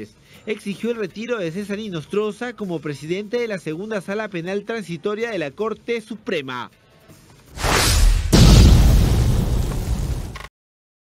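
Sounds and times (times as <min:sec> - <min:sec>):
explosion rumble: 0:07.6 - 0:10.4.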